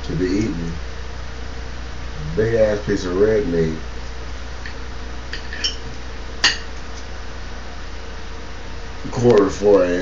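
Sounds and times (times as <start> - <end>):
cutlery clinking against plate: 5.4 - 5.8.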